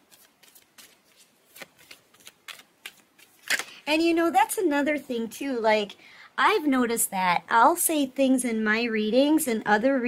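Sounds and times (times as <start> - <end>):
cards flicking and clicking: 0.0 - 3.8.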